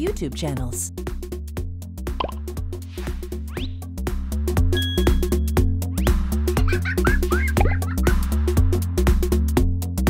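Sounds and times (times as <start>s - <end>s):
upbeat electronic music: 2.1s - 10.0s.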